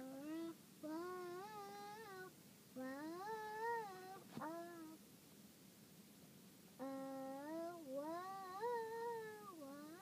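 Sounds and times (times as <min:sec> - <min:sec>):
young girl singing: 0:00.0 - 0:05.0, 0:06.8 - 0:10.0.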